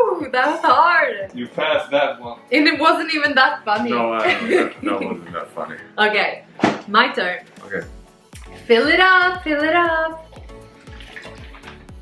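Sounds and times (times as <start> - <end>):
background music with steady beat: 0.0 - 12.0
water sloshing in plastic bottle: 10.3 - 12.0.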